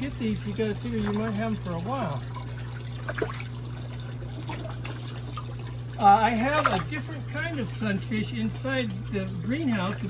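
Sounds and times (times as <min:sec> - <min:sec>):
water trickling into pond: 0:00.0 - 0:10.0.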